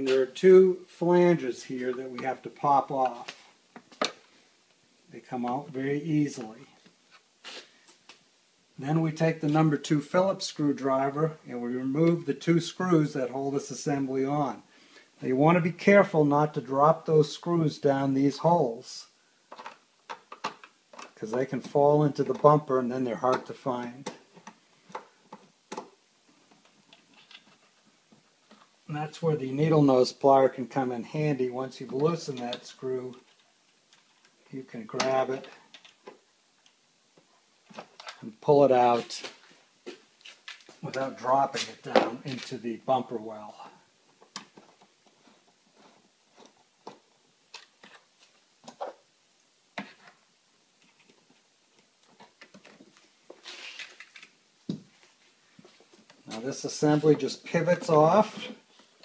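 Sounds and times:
clothing rustle: 52.1s - 59.0s.

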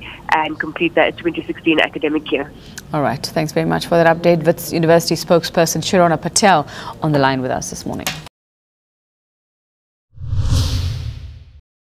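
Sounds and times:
transition whoosh over deep rumble: 10.2s - 11.6s.

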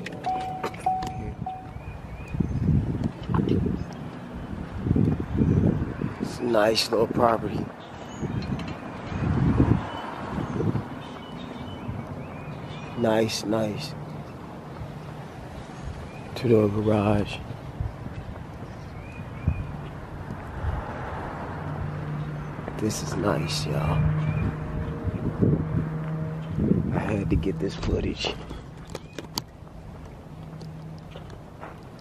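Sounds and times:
wind buffeting microphone: 0.0s - 13.0s, 13.6s - 32.0s
outdoor background noise: 0.0s - 32.0s.

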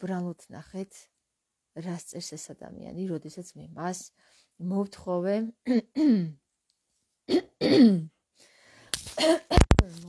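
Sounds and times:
woman clearing her throat: 5.7s - 6.4s, 7.3s - 8.2s, 9.2s - 9.7s.

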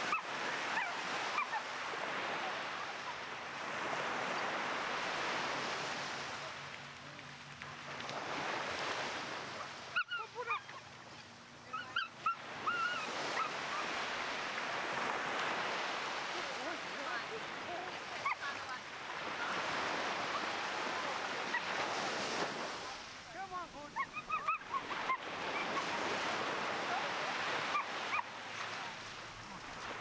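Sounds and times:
small waves breaking on shore: 0.0s - 30.0s.

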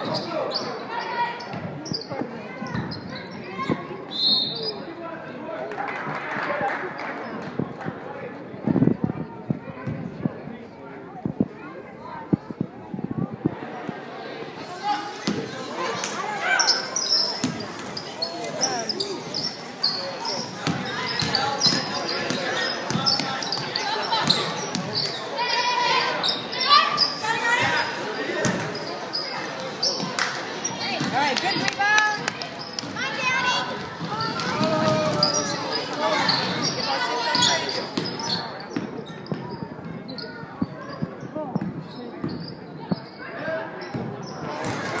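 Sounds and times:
sneakers squeaking: 0.0s - 4.9s, 14.7s - 45.0s
voices calling out: 13.6s - 45.0s.

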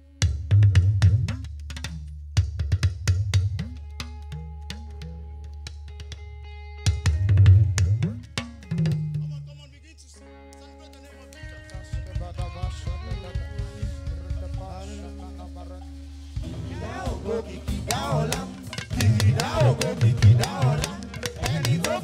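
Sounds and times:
talking drum struck with stick: 7.1s - 9.5s, 11.5s - 14.9s, 16.4s - 22.0s
band holding notes: 10.2s - 22.0s.

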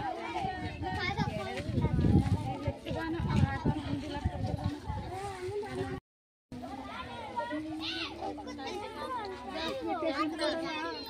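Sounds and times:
women and children chattering: 0.0s - 11.0s.

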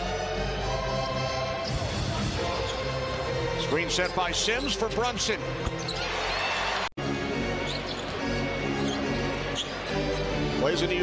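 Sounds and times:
arena music: 0.0s - 11.0s.

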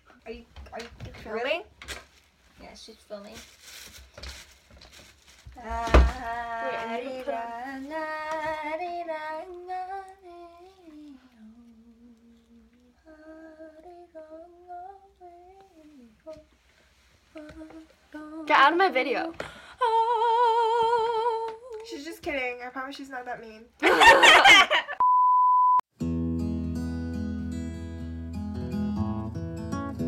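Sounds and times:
guitar intro music: 25.9s - 30.0s.

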